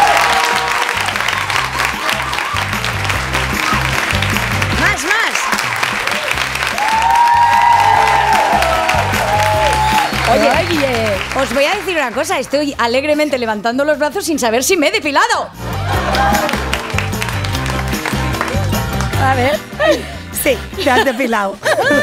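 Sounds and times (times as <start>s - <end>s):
studio audience applauding: 0.0s - 12.8s, 15.8s - 19.8s
background music with bass beat: 1.0s - 4.9s, 15.5s - 21.1s.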